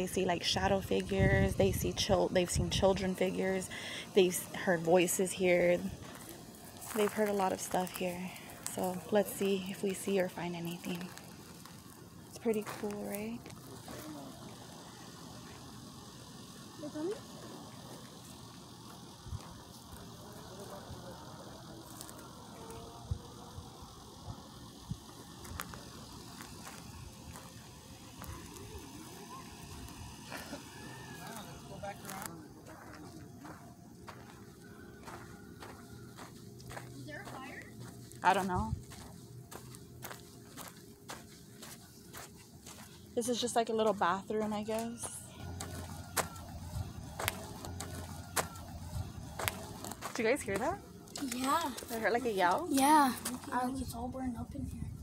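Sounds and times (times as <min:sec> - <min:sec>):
faint low hum: 0:00.0 - 0:55.0
faint voices murmuring: 0:01.4 - 0:43.3
footsteps on dirt and grass: 0:04.5 - 0:15.6, 0:25.0 - 0:53.5.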